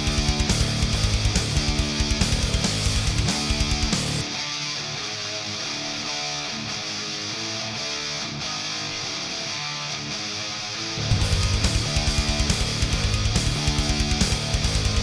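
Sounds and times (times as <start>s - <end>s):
band with drums and bass: 0.0s - 4.3s, 11.0s - 15.0s
electric guitar picked notes: 0.0s - 15.0s.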